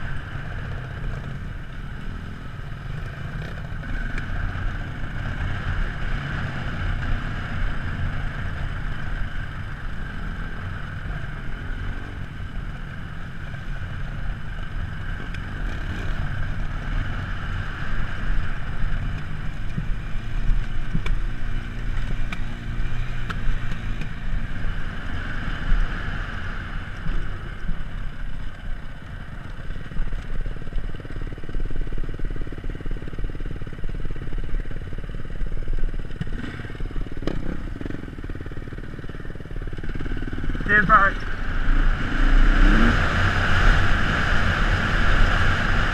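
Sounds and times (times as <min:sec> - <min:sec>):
dirt bike engine running: 0:00.0 - 0:45.9.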